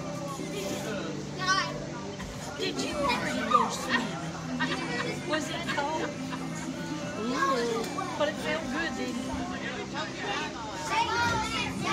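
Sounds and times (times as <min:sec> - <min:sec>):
indistinct chatter and calling out: 0:00.0 - 0:11.9.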